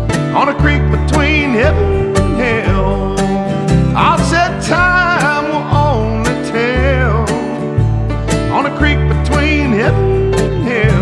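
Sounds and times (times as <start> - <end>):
country band playing: 0.0 - 11.0.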